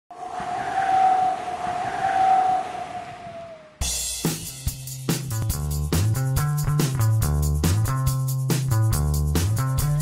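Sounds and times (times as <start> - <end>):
music with drum beat: 3.8 - 10.0.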